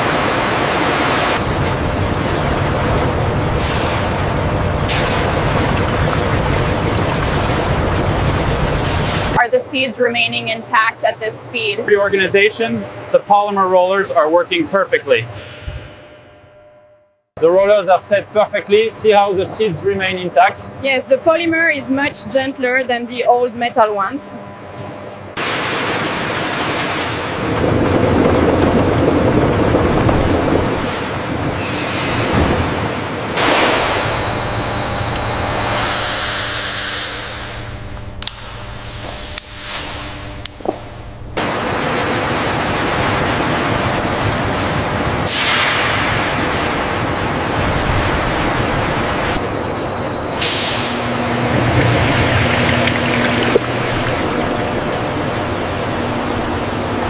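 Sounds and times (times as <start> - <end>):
processing machinery running: 0.0 - 16.4, 17.4 - 57.0
liquid pouring into tank: 1.8 - 9.4, 51.4 - 54.6.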